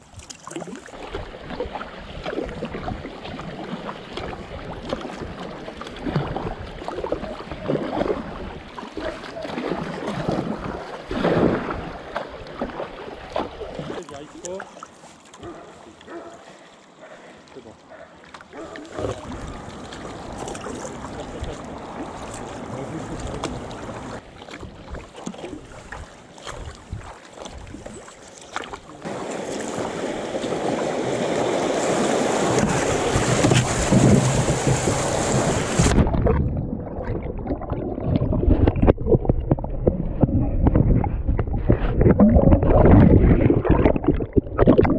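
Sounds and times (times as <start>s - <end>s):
paddle splashes: 0.0s - 44.9s
water lapping: 0.0s - 44.9s
water rushing along kayak hull: 0.0s - 44.9s
rushing white water: 18.8s - 24.2s, 27.9s - 36.2s
muffled underwater gurgling: 32.4s - 44.9s.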